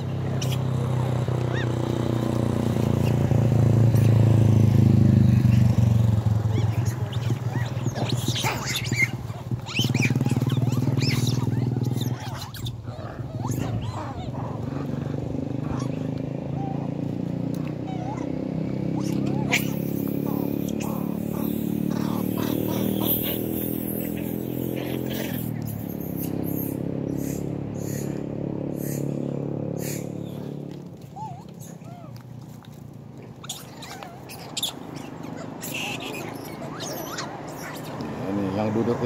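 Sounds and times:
motor engine running: 0:00.0 - 0:39.0
outdoor ambience: 0:00.0 - 0:39.0
vehicle approaching: 0:00.0 - 0:39.0.

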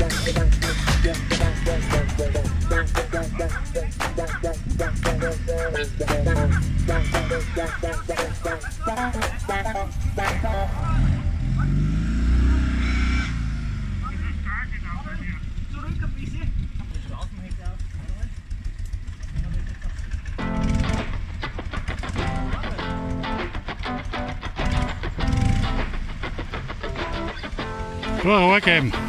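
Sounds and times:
background music: 0:00.0 - 0:11.5, 0:22.1 - 0:29.0
voices: 0:00.0 - 0:20.2, 0:21.6 - 0:25.2, 0:25.8 - 0:29.0
vehicle engine revving: 0:00.0 - 0:29.0.

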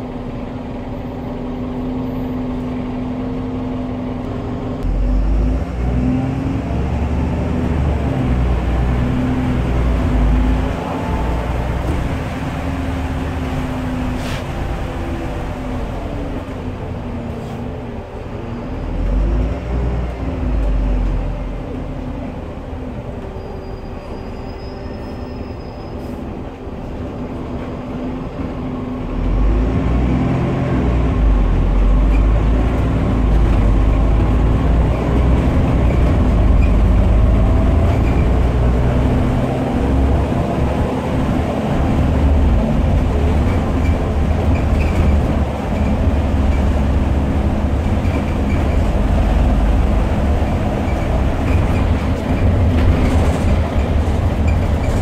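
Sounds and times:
bus diesel engine accelerating: 0:00.0 - 0:55.0.

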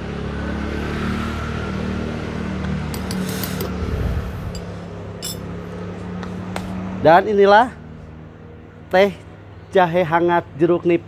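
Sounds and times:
low hum: 0:03.5 - 0:05.5
spoon clinking against glass: 0:04.6 - 0:05.4.

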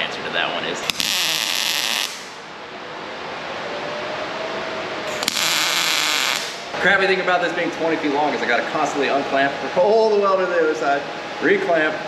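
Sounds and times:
arc welding hiss: 0:00.8 - 0:02.4, 0:05.1 - 0:06.6.

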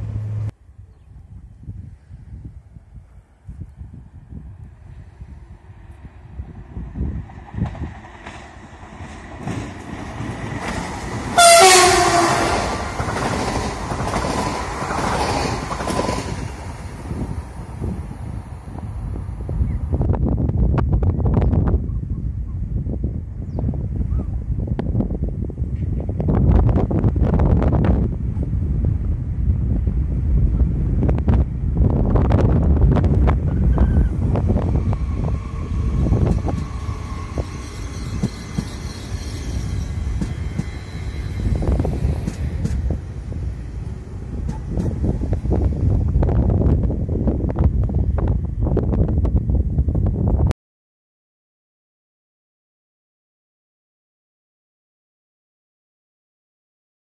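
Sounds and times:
train rumble and wheel clatter: 0:00.0 - 0:00.6, 0:01.2 - 0:50.5
train horn blast: 0:11.4 - 0:12.8.

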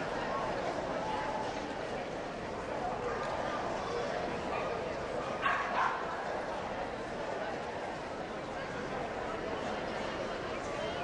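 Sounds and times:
murmur of voices: 0:00.0 - 0:11.0
dog barking: 0:05.4 - 0:06.0.

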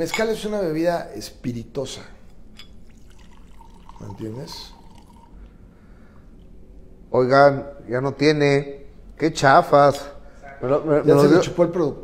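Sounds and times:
liquid trickling into glass: 0:02.6 - 0:05.4.

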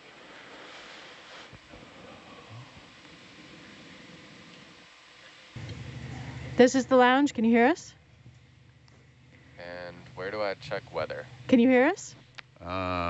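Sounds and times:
faint steady hiss: 0:00.0 - 0:13.0
low hum: 0:01.6 - 0:13.0.

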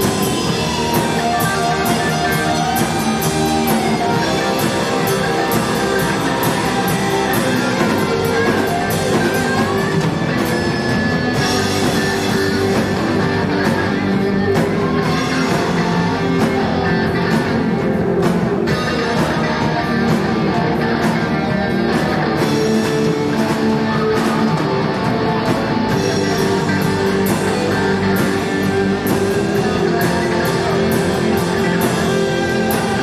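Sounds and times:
drum kit and cymbal hits: 0:00.0 - 0:33.0
electric guitar: 0:00.0 - 0:33.0
live rock band playing: 0:00.0 - 0:33.0.

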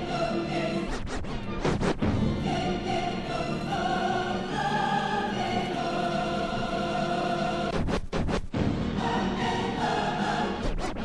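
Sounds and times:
choir singing long notes: 0:00.0 - 0:00.9, 0:02.2 - 0:07.7, 0:08.8 - 0:10.7.

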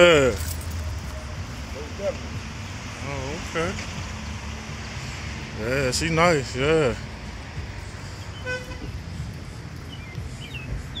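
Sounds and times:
low street rumble: 0:00.0 - 0:11.0
short horn toot: 0:08.4 - 0:08.9.

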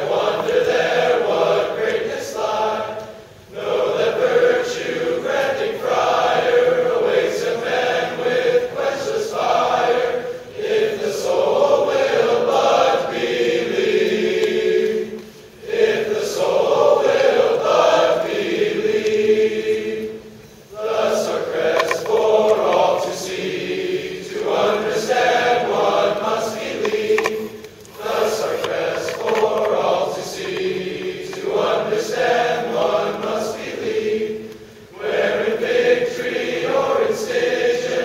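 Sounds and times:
male choir singing: 0:00.0 - 0:38.0.

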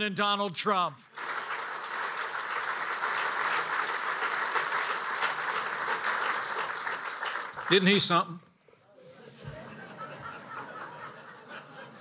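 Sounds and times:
audience applauding: 0:01.1 - 0:08.1.

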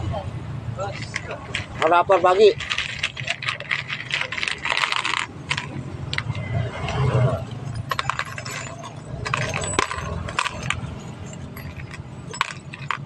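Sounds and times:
metal bolts clinking on a plate: 0:00.9 - 0:13.0.

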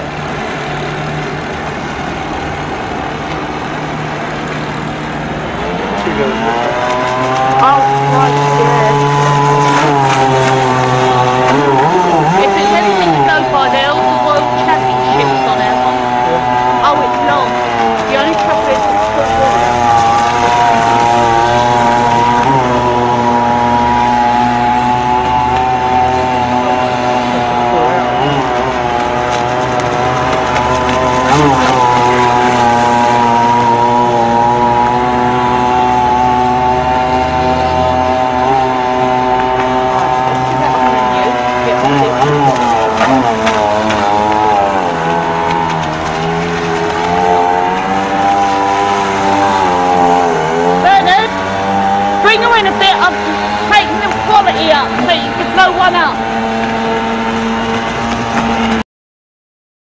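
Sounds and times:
model boat engine droning: 0:00.0 - 0:58.8.

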